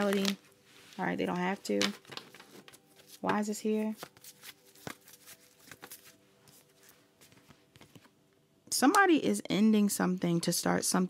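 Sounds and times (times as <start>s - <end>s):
cards flicking and tapping: 1.7s - 6.6s.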